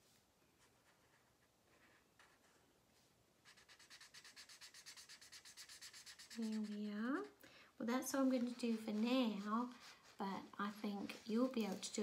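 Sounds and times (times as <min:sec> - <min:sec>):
marker scribbling on paper: 0:03.4 - 0:07.3, 0:08.2 - 0:11.5.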